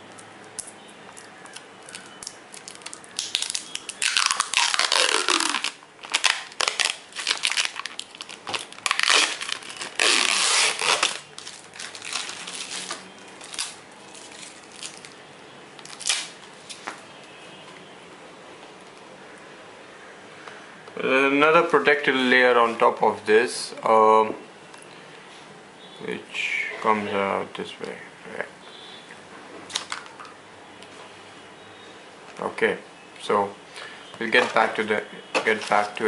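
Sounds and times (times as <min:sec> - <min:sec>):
plastic wrap crinkling and tearing: 0:01.2 - 0:15.2, 0:15.8 - 0:16.9.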